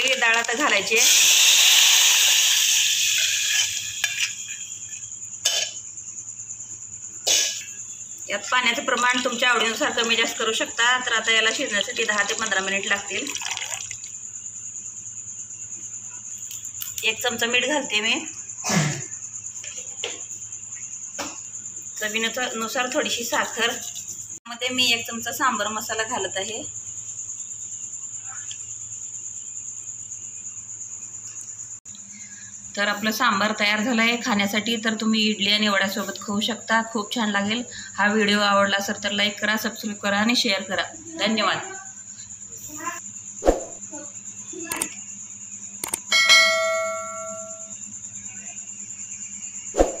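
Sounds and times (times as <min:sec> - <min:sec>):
cricket trilling: 0:00.0 - 0:50.0
bell chime ding: 0:46.1 - 0:47.7
faint high whine: 0:46.1 - 0:50.0.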